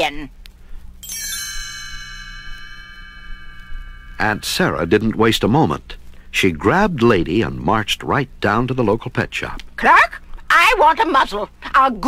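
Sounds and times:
bell-like page-turn chime: 1.0 - 5.0.

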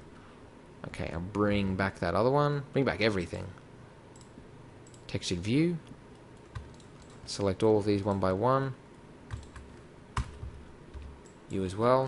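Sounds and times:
keyboard keys clicking: 6.4 - 7.2, 9.3 - 11.6.

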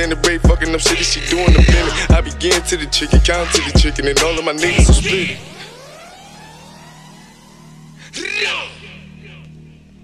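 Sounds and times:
sweeping tones rising and falling: 3.3 - 8.4.

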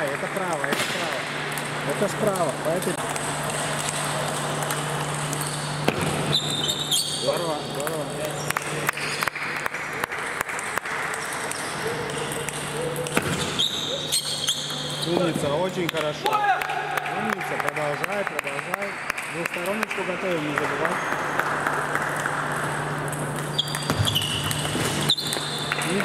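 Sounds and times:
steady low hum: 0.0 - 26.0
table tennis balls ticking: 1.5 - 9.2, 10.4 - 15.9, 22.2 - 26.0.

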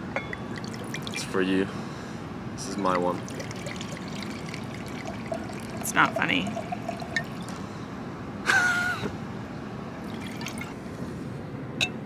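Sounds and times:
wine trickling into glass: 0.4 - 1.4, 2.8 - 7.6, 10.0 - 10.8.

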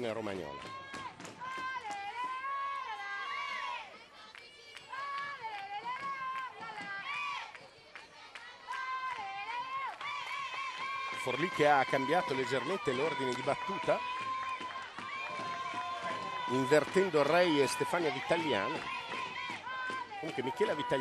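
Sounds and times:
high voices singing a cheer: 0.7 - 21.0.

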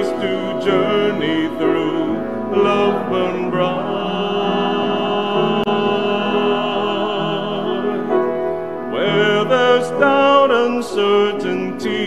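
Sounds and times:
choir singing a hymn: 0.0 - 12.0
piano accompaniment: 0.0 - 12.0.

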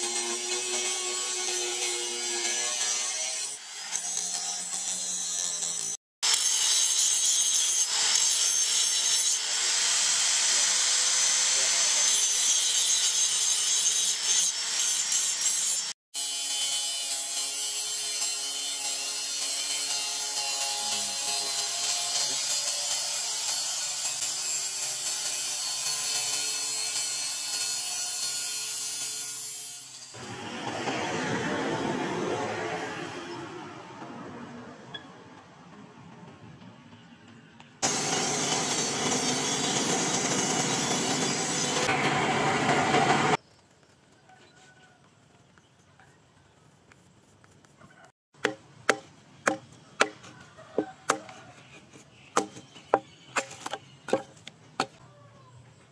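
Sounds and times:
angle grinder grinding steel: 0.0 - 33.4, 37.8 - 43.4.

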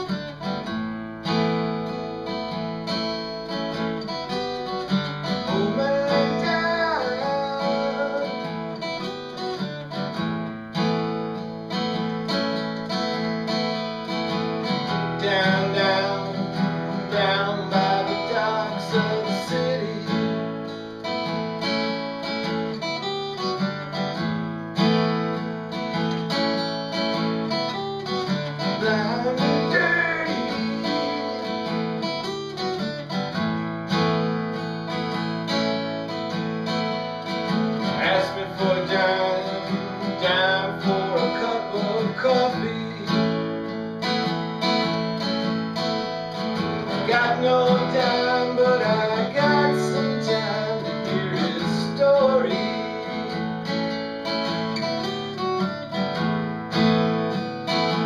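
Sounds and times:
acoustic guitar: 0.0 - 58.0.

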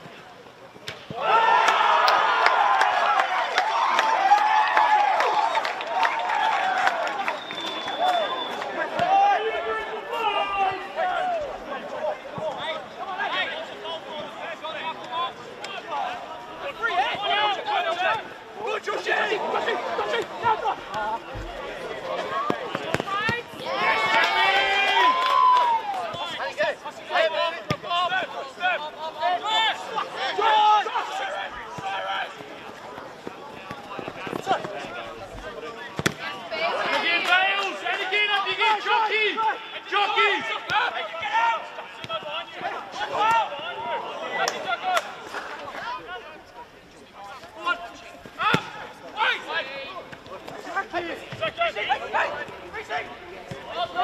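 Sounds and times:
voices shouting: 1.1 - 32.4, 35.8 - 46.4.

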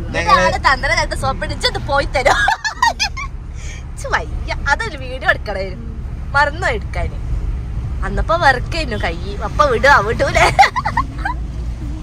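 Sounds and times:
people talking: 0.0 - 3.1, 4.0 - 7.2, 8.0 - 10.9
road vehicle rumble: 0.0 - 12.0.

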